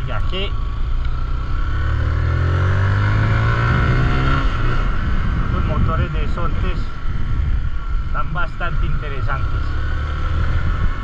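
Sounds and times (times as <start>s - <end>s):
motorcycle engine accelerating: 0.0s - 11.0s
wind and road noise: 0.0s - 11.0s.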